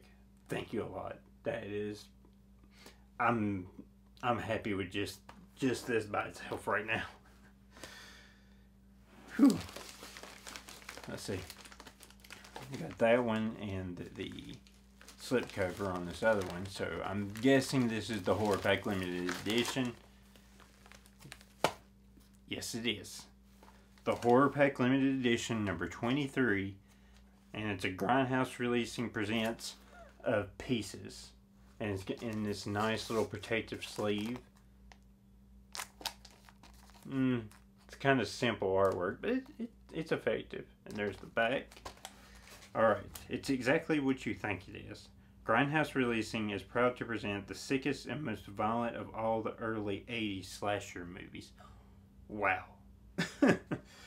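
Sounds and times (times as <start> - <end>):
man sighing: 7.7 - 9.8
plastic sleeve crinkling: 9.3 - 22.5, 23.4 - 26.2, 31.8 - 35.0, 35.7 - 38.0, 40.9 - 43.6.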